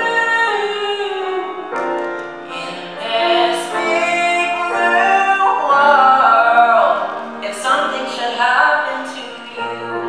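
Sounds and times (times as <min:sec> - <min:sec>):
two singers singing a duet: 0:00.0 - 0:10.0.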